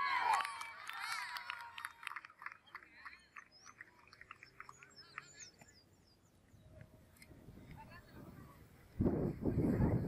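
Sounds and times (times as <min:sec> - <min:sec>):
birds chirping: 0:02.4 - 0:07.2.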